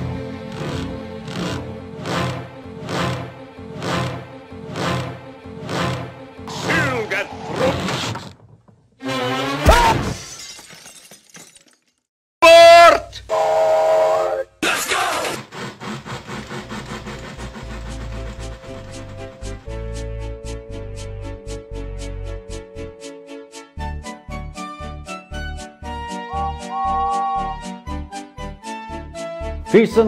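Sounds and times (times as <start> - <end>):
loud pitched squeal: 6.5 - 8.2, 26.2 - 27.7
steam train chuffing: 15.4 - 20.1
pulsing music passage: 25.8 - 28.0.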